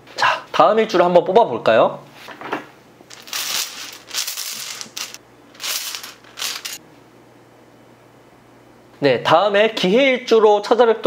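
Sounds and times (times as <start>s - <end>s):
small balls rattling in container: 3.1s - 6.8s.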